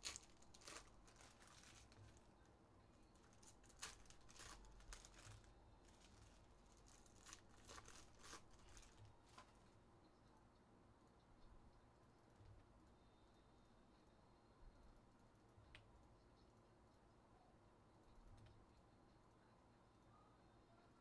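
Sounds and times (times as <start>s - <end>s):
foil pack crinkling and tearing: 0.0s - 2.3s, 3.0s - 9.7s.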